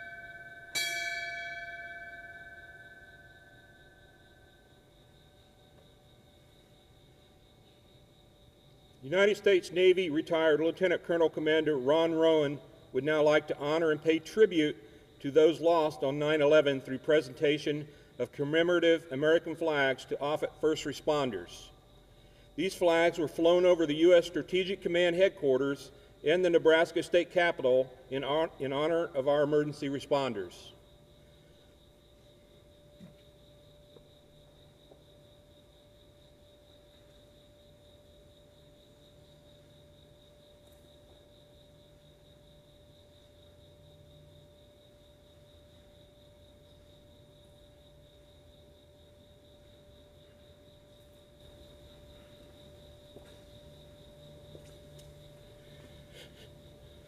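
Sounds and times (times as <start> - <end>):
faint electrical hum: 0.0 - 57.0.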